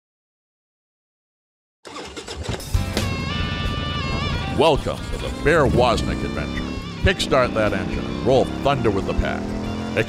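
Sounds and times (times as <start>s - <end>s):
motorcycle engine running: 2.2s - 10.0s
intro music: 2.6s - 10.0s.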